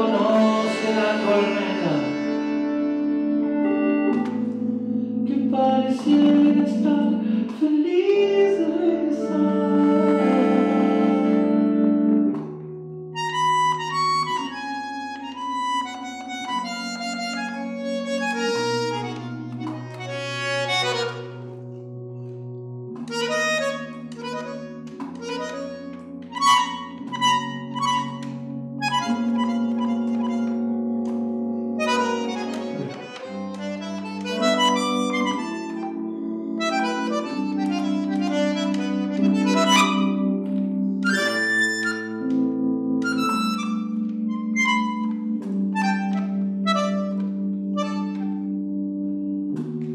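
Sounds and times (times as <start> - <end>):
bandoneon playing: 0.0 - 4.5, 9.1 - 12.4, 13.1 - 22.0, 22.9 - 40.4, 41.0 - 48.6
electric keyboard playing: 0.0 - 49.9.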